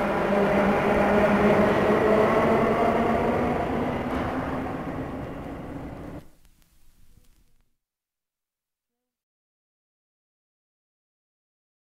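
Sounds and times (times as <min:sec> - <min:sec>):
subway train rumble: 0:00.0 - 0:06.4.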